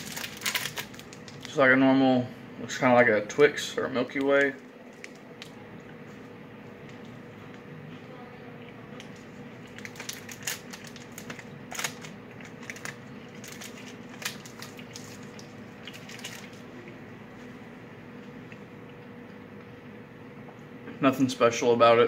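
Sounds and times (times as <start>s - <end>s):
chewing and crunching biscuit: 0.0s - 1.6s, 8.6s - 17.0s.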